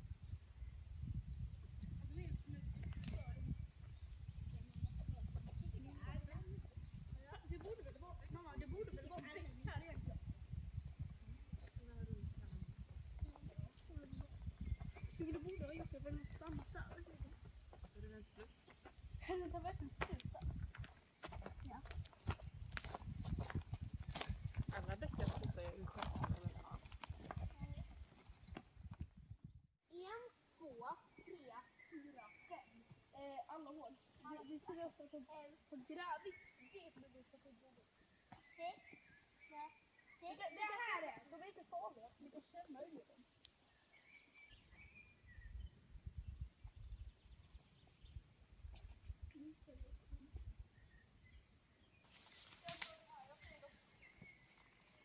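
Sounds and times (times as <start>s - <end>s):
wind noise on microphone: 0.0s - 29.7s, 44.5s - 51.4s
footsteps crunching on dry leaves: 52.0s - 55.0s.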